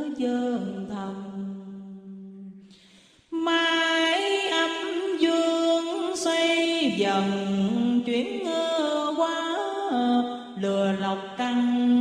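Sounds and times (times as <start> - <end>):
person chanting scripture: 0.0 - 2.3, 3.4 - 12.0.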